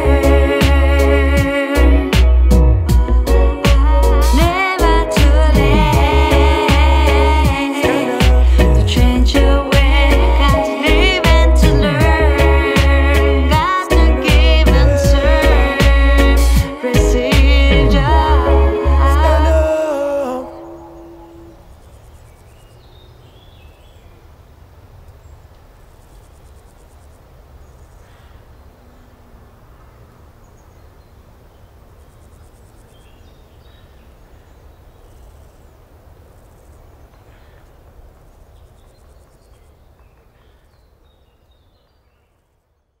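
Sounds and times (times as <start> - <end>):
low rumble: 0.0 - 7.5, 17.0 - 19.8
birds chirping: 1.4 - 43.0
insects trilling: 19.3 - 39.8.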